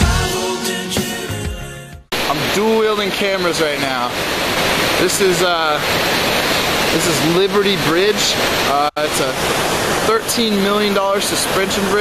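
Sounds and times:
waterfall rushing: 2.1 - 12.0
man talking: 2.2 - 4.2, 5.0 - 5.9, 6.9 - 9.4, 10.0 - 12.0.

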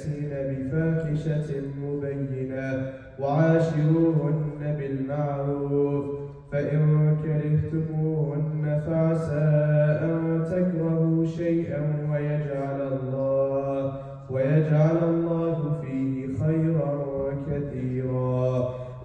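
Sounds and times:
man chanting melodically: 0.0 - 19.0.

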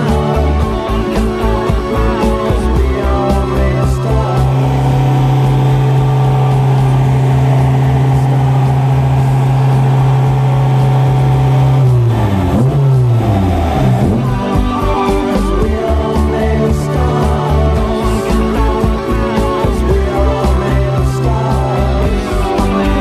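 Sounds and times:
background music with a beat: 0.0 - 23.0
car engine on dynamometer: 0.0 - 23.0.

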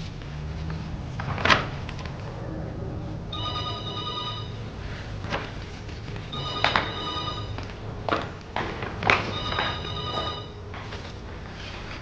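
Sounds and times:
telephone ringing: 3.4 - 4.7, 6.3 - 7.6, 9.3 - 10.6.

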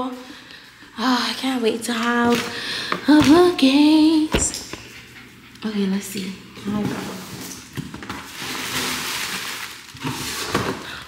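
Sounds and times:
packaging rustling and crinkling: 7.1 - 11.0.

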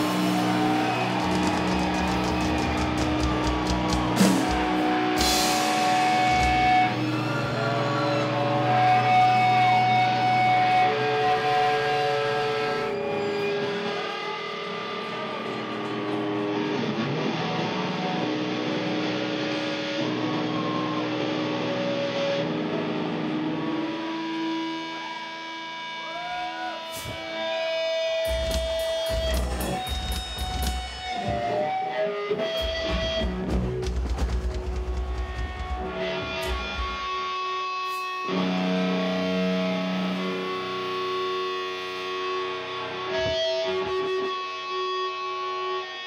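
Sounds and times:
droning electric guitar and bass: 0.0 - 46.0
drum hits: 1.1 - 6.8, 32.6 - 37.1.

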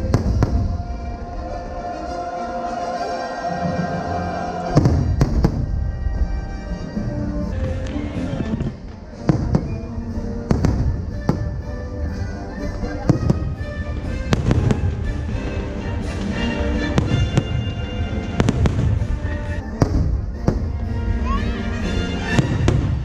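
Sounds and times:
fireworks bursting: 0.0 - 1.8, 4.6 - 6.8, 7.4 - 20.9, 22.2 - 23.0
music soundtrack: 0.0 - 23.0.

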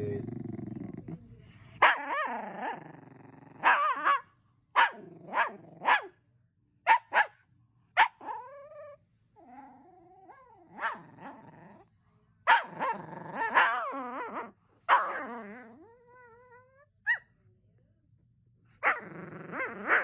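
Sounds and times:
dog growling: 0.0 - 4.2, 4.9 - 6.1, 8.2 - 11.9, 12.5 - 16.9, 18.8 - 20.0
dog whining: 8.2 - 11.7, 12.5 - 17.2.

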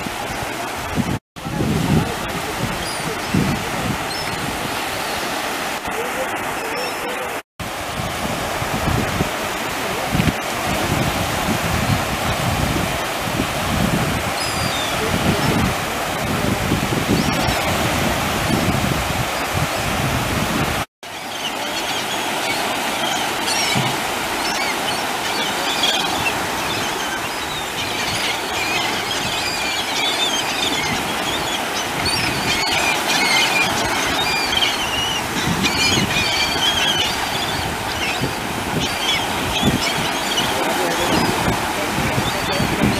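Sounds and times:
wind rumbling on microphone: 0.0 - 6.6, 7.6 - 20.9, 21.5 - 42.9
surf breaking: 0.0 - 42.9
gulls calling: 2.4 - 7.4, 14.2 - 19.9, 21.0 - 42.9.

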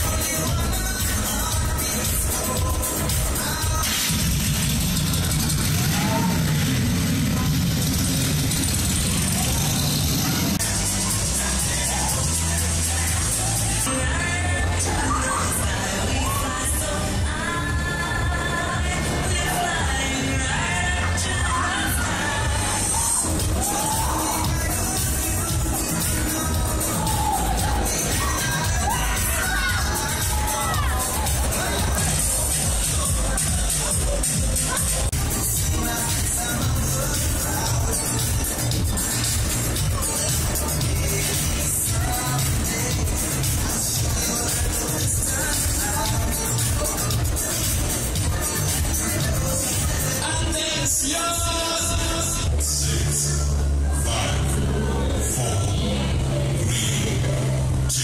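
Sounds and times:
dance music with bass beat: 0.0 - 58.0
riders screaming and shouting: 5.4 - 12.7, 21.8 - 25.6, 26.3 - 32.3.

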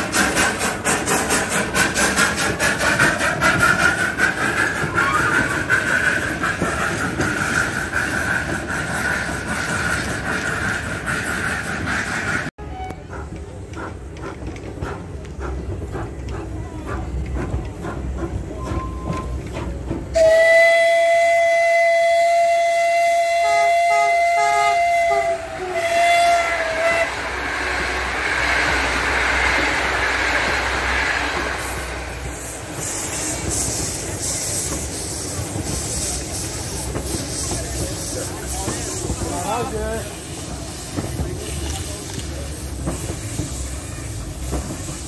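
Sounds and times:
moving train rushing: 0.0 - 45.0
rail clicks: 0.0 - 45.0
train whistle blast: 12.6 - 13.2, 20.1 - 27.5.

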